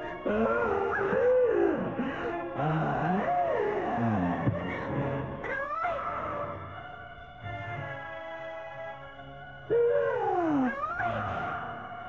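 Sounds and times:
wailing cry: 0.2s - 4.5s, 9.7s - 11.8s.

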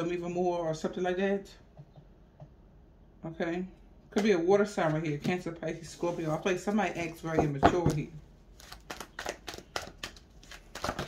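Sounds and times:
cards being shuffled: 8.6s - 11.0s.

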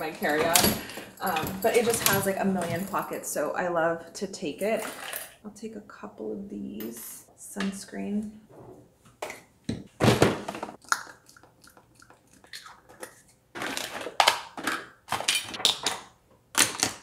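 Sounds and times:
plastic knocks and clatters: 9.7s - 10.8s.

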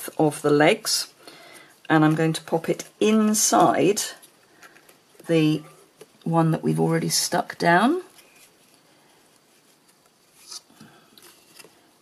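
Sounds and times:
faint papery rustle: 7.9s - 12.0s.

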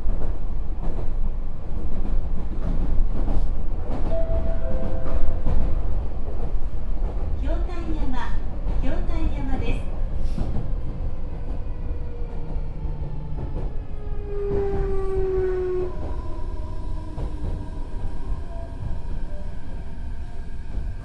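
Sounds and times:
wheels rumbling on rail: 0.0s - 21.0s.

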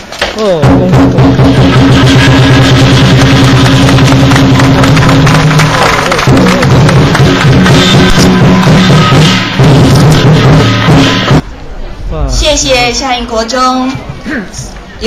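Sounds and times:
barrel drum beating fast: 0.6s - 11.4s.

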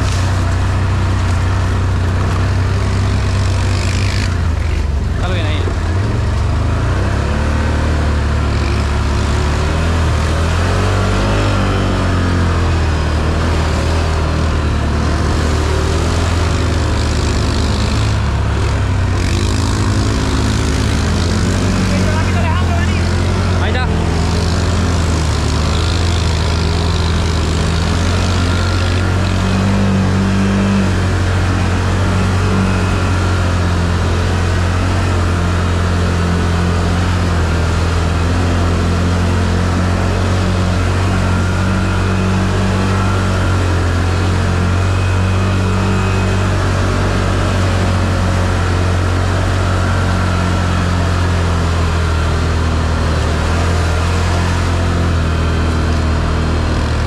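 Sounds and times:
atv engine running: 0.0s - 57.0s.

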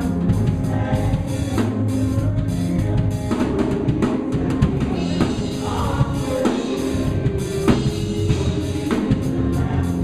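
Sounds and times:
bass guitar: 0.0s - 10.0s
drums: 0.0s - 10.0s
keyboard: 0.0s - 10.0s
voices singing: 0.0s - 10.0s.

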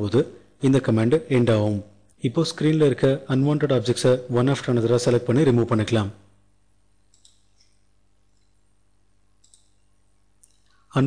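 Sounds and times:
computer mouse clicks: 7.0s - 8.6s, 9.4s - 10.8s.

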